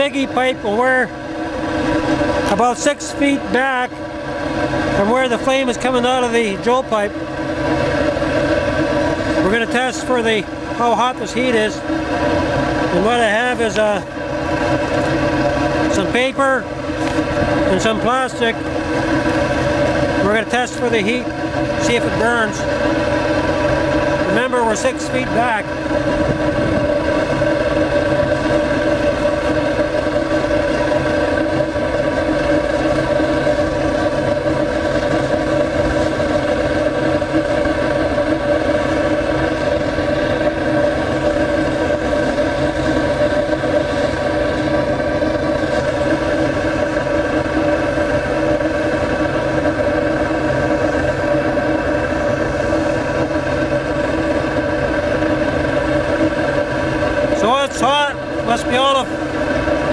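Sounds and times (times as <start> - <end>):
flame roaring through exhaust pipe: 0.0 - 59.9
steady ringing tones: 0.0 - 59.9.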